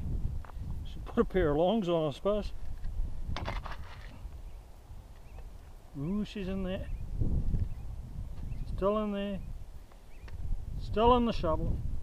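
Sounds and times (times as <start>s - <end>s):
wind rumble on microphone: 0.0s - 12.0s
pick scraping gravelly soil: 1.8s - 4.3s.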